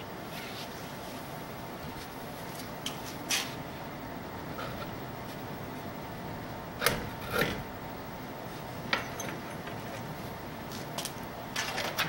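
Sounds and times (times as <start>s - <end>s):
steady low hiss: 0.0s - 12.0s.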